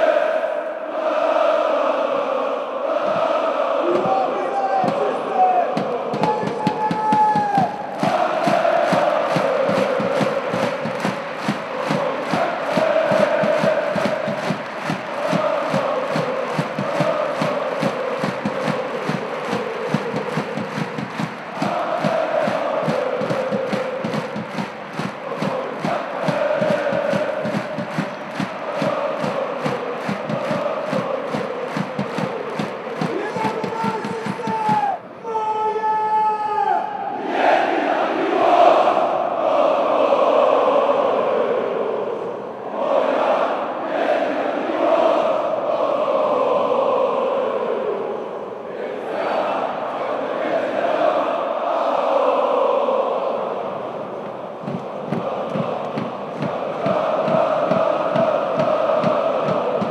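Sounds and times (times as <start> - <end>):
crowd chanting in unison: 0.0 - 59.9
rhythmic handclapping: 3.0 - 35.0, 53.8 - 59.9.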